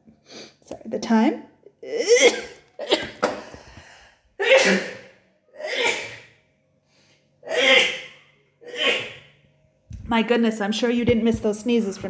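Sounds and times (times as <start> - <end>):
woman sneezing: 2.0 - 3.2, 4.4 - 6.3, 7.5 - 9.2.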